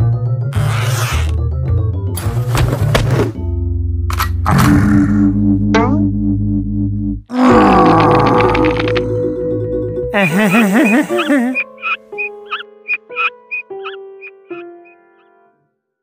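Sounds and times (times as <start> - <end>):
cartoon music score: 4.4 - 15.5
cartoon brute's angry roar: 7.3 - 8.8
comic sound effects: 10.2 - 11.7.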